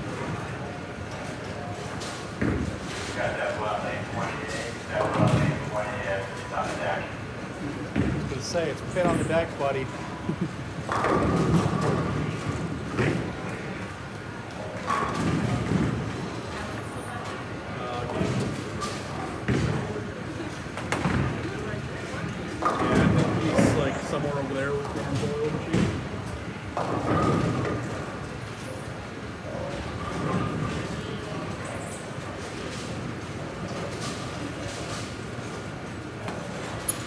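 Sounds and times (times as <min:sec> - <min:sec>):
bowling balls hitting pins: 0:22.6 - 0:23.8.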